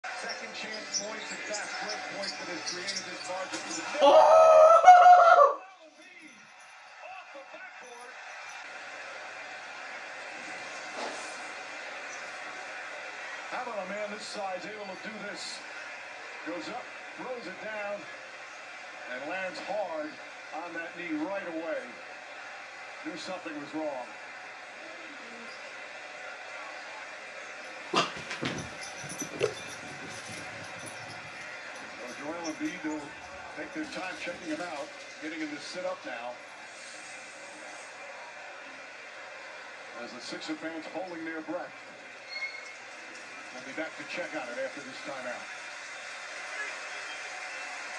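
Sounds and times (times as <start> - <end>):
arena crowd on tv: 0.0 - 47.9.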